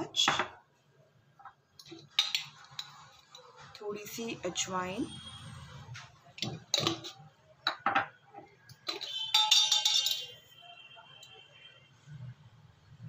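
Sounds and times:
spoon clinking on metal containers: 0:01.8 - 0:04.2, 0:06.4 - 0:10.6
high metallic ringing: 0:08.9 - 0:10.6.

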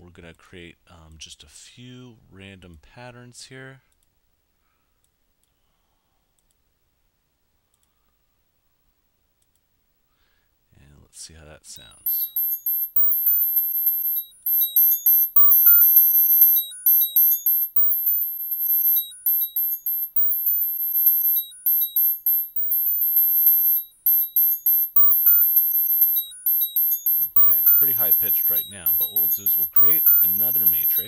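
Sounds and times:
short chiming synth notes: 0:12.1 - 0:31.0.

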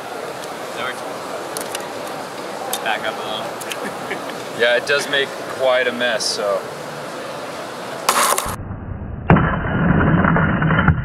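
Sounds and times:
sharp impact: 0:08.1 - 0:11.0.

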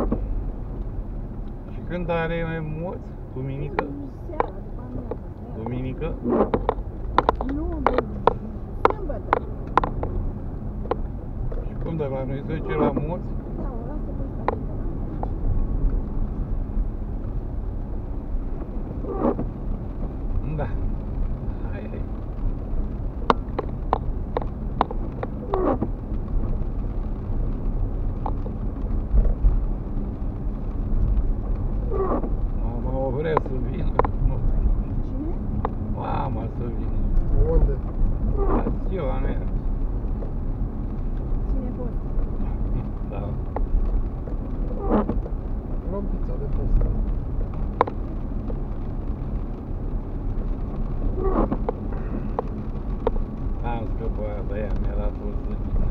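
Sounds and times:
car engine and tyre rumble: 0:00.0 - 0:55.9
voices: 0:01.7 - 0:06.5, 0:07.3 - 0:09.6, 0:11.6 - 0:16.1, 0:41.5 - 0:43.4.

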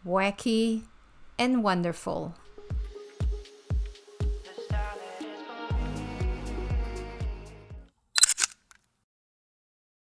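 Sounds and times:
electronic music with bass beat: 0:02.7 - 0:07.8
camera shutter double click: 0:08.2 - 0:08.8.

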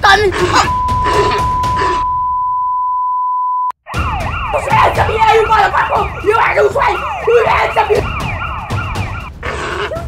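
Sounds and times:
electronic siren-like wail: 0:00.6 - 0:02.4, 0:03.8 - 0:09.4.

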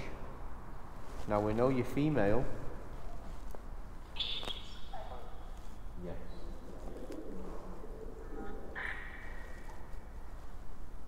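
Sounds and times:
bird cooing: 0:04.2 - 0:10.6.

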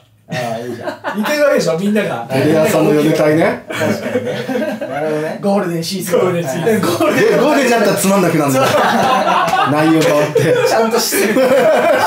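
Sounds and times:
men laughing: 0:00.3 - 0:01.6, 0:02.8 - 0:05.3, 0:06.5 - 0:12.0
men talking: 0:00.3 - 0:12.0.

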